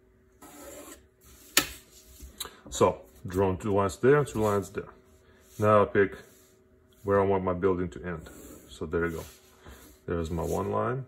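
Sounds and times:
pencil scratching along ruler: 0.4 - 2.1, 8.2 - 10.7.

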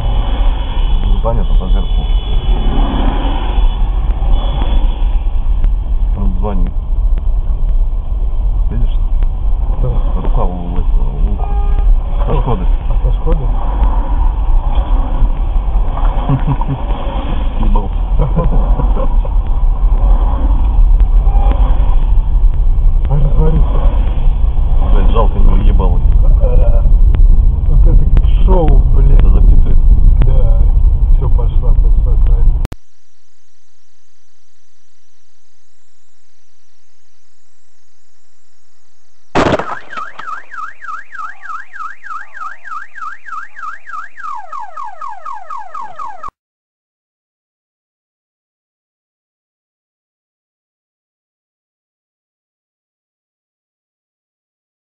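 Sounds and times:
car engine and road rumble: 0.0 - 46.3
indistinct voices: 8.7 - 22.2, 23.0 - 32.7
car alarm warbling: 39.2 - 46.4.

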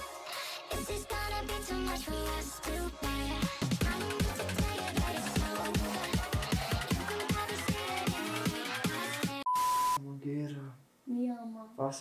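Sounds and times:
electronic dance music: 0.0 - 9.4
high steady beep: 9.4 - 10.0.

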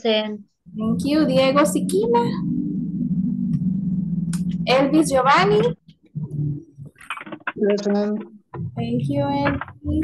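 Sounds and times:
short low sound: 0.7 - 5.1.

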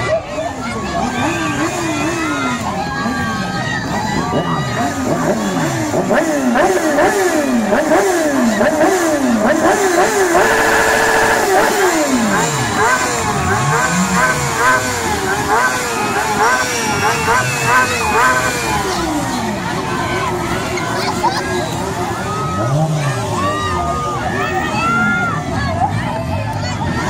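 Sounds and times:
motorcycle engines revving: 0.0 - 27.0.

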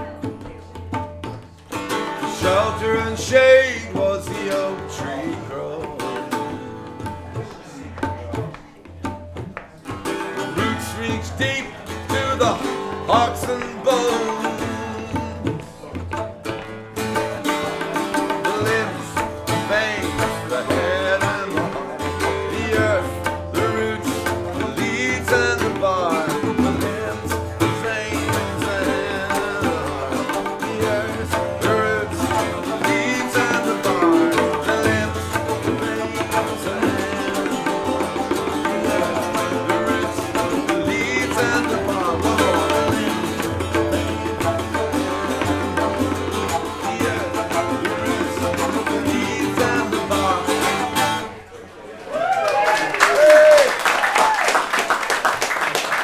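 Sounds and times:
tabla drums: 0.0 - 51.3
plucked string instrument: 0.0 - 51.7.

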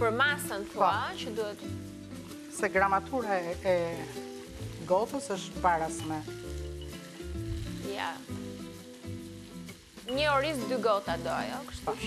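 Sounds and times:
food sizzling in a pan: 0.0 - 12.0
soft background music: 0.0 - 12.0.

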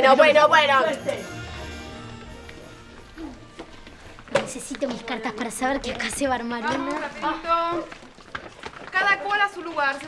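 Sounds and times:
classroom bustle: 0.0 - 10.0.

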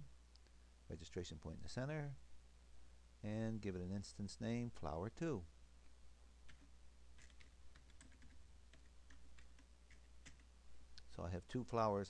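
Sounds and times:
low steady hum: 0.0 - 12.0
keyboard keystrokes: 6.5 - 10.5.

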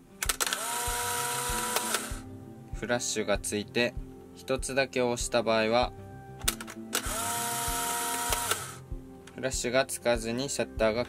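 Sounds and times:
camera film motor whirring: 0.2 - 2.2, 6.5 - 8.8
camera shutter click: 0.2 - 2.2, 6.4 - 8.8.

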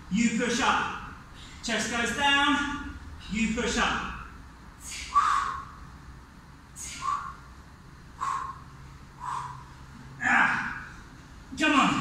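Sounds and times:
man breathing out hard: 8.2 - 9.9.

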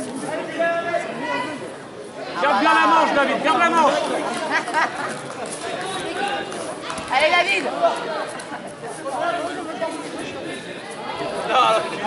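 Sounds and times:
spectators chattering and calling out: 0.0 - 12.0.

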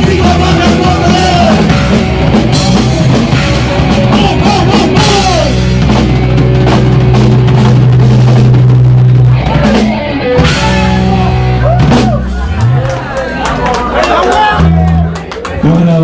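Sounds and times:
loud punk band playing: 0.0 - 16.0.

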